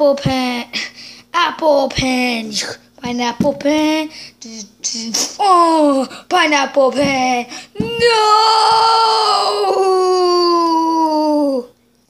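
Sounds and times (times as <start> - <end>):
child wailing: 7.8 - 11.7.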